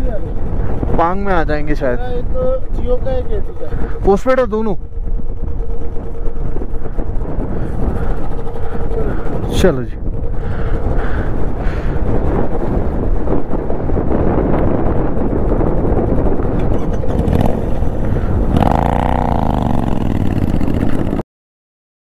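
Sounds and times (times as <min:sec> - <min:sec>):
motorcycle engine running: 0:00.0 - 0:21.2
wind rush on microphone: 0:00.0 - 0:21.2.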